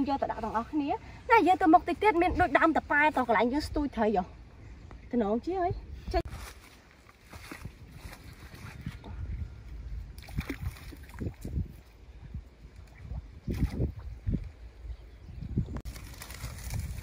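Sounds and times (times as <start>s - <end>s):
river water splashing: 10.2s - 11.6s.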